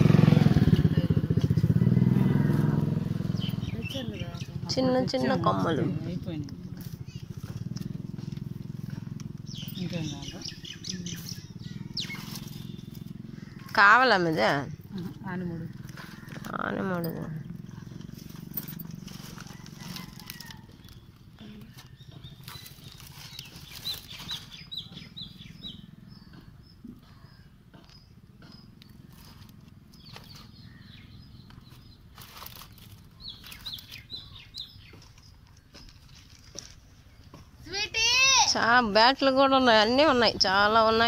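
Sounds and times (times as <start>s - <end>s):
plastic bag rustling: 21.7s - 24.6s, 32.1s - 34.0s.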